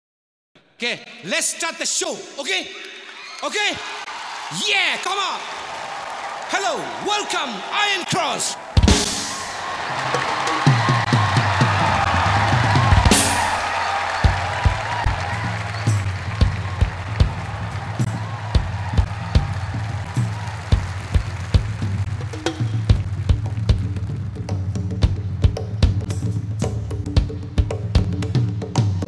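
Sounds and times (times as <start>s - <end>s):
kick drum beat: 10.7s - 24.0s
sustained bass line: 14.3s - 29.0s.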